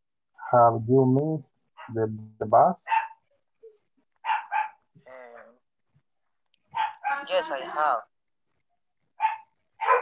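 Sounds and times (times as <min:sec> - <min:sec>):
dog barking: 0:01.8 - 0:02.0, 0:02.8 - 0:03.3, 0:04.2 - 0:04.9, 0:06.7 - 0:07.3, 0:09.2 - 0:10.0.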